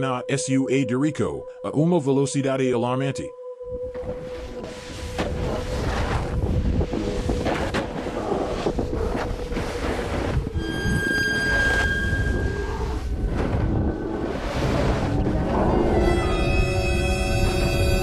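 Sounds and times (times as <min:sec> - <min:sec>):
music: 0:00.0 - 0:18.0
wind rushing over microphone: 0:04.8 - 0:11.1
held high tones: 0:10.6 - 0:13.0.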